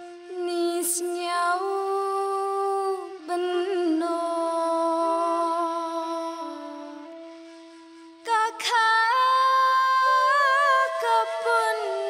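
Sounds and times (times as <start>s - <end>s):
woman singing long held notes: 0.0s - 7.4s, 8.2s - 12.0s.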